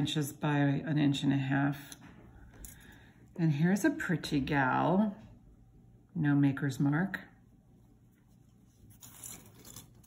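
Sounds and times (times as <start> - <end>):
metal brooch scraping on surface: 8.3 - 10.0.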